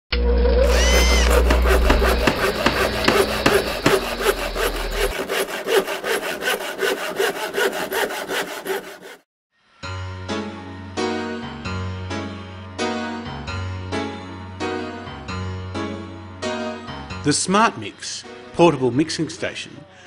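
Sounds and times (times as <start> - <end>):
rising and falling whistle: 0.6 - 1.3
rhythmic rasping scraping: 0.6 - 9.2.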